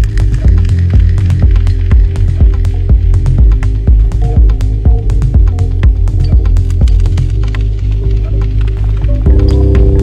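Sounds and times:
deep bassline and kick drum: 0.0 - 10.0.

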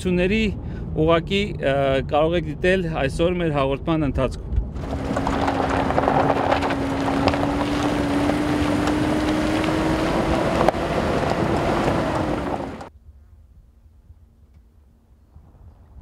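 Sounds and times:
vehicle engine hum: 0.0 - 12.9
road and wind rumble: 0.0 - 13.0.

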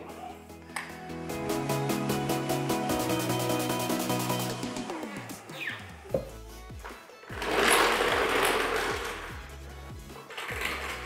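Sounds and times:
background music: 0.0 - 11.0
floor jack rattling on wheels: 7.3 - 9.5, 10.3 - 11.0.

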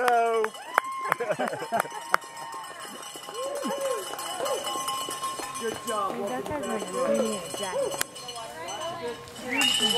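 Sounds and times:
people laughing and whooping: 0.0 - 5.1.

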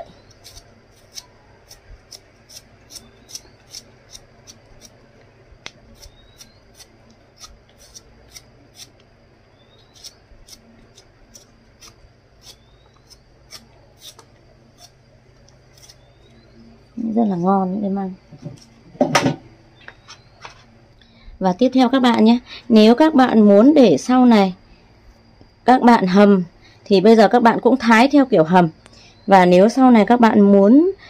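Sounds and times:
knife cutting bamboo shoot: 0.3 - 5.0, 5.7 - 9.0, 9.9 - 16.1.

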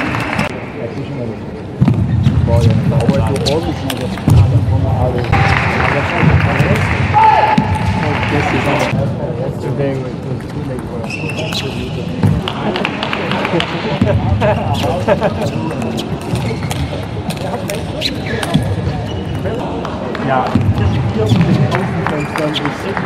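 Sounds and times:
audience applause and cheering: 0.0 - 0.5, 5.2 - 8.9.

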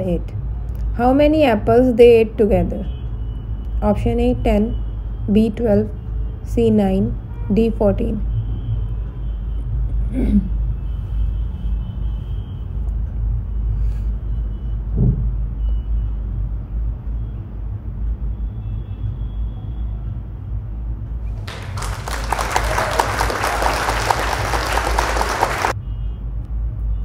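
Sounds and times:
applause: 21.4 - 25.8.

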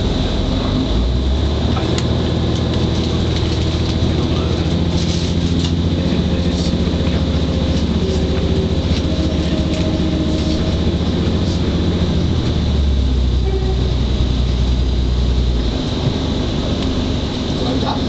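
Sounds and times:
train diesel engine under load: 0.0 - 18.0.

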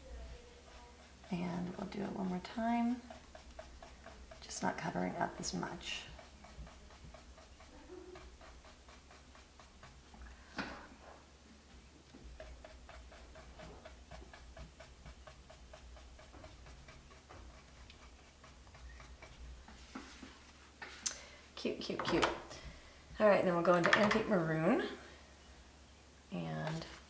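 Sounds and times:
low room hum: 0.0 - 27.0.

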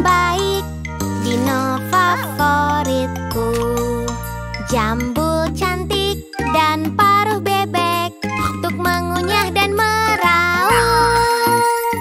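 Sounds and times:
children's song with backing music: 0.0 - 12.0.

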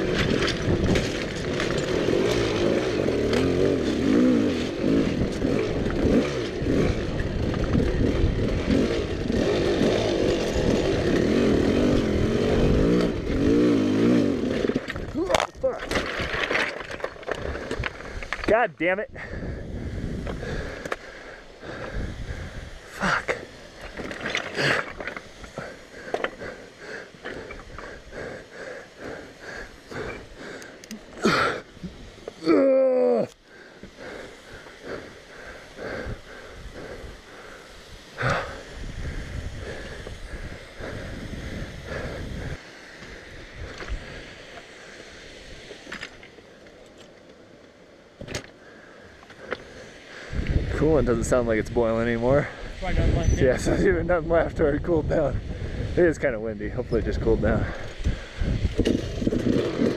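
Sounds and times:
rocks and bike clattering: 0.0 - 19.4, 20.2 - 32.4, 45.7 - 50.8, 56.0 - 59.9
wind: 0.0 - 59.9
person groaning: 15.1 - 15.9, 30.9 - 31.7, 32.4 - 34.2, 38.2 - 38.7
hard breathing: 16.8 - 18.5, 19.1 - 45.9, 48.5 - 50.8, 57.5 - 59.9.

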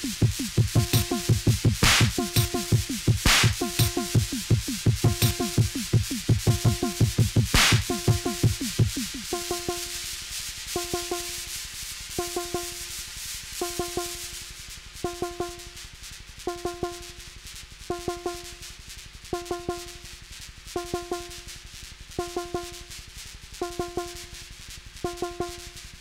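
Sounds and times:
repeating synth stab: 0.0 - 9.2
fast kick drum: 0.0 - 9.5.

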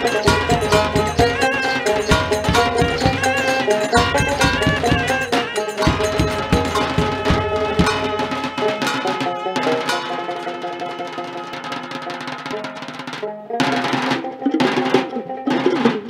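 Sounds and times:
drums played in rapid strokes: 0.0 - 16.0
ensemble accented strikes: 0.0 - 16.0
held melodic tones: 0.0 - 16.0.

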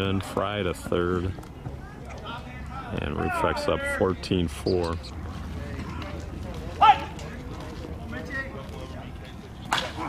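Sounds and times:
player shouting: 3.1 - 4.1.

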